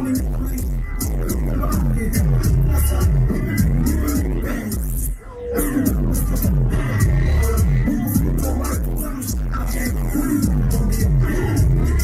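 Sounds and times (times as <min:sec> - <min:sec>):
heavy-bass electronic beat: 0:00.0 - 0:12.0.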